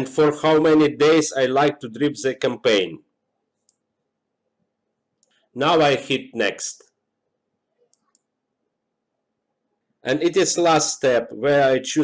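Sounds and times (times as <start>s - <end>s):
computer mouse clicks: 3.6s - 3.9s, 7.8s - 8.4s.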